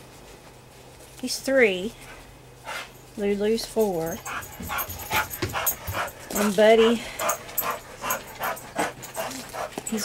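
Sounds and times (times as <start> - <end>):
dog panting: 2.0 - 3.1, 3.9 - 10.0.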